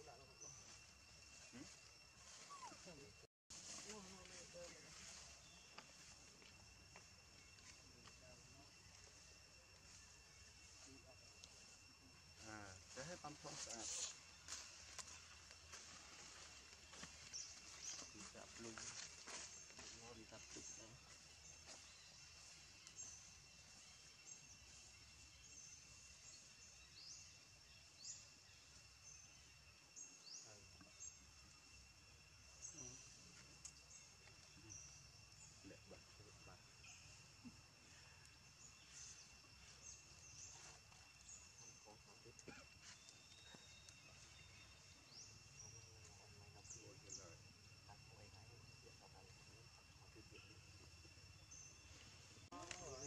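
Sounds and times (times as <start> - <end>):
bird chirps: 0.0 - 48.9
high insect drone: 0.0 - 53.0.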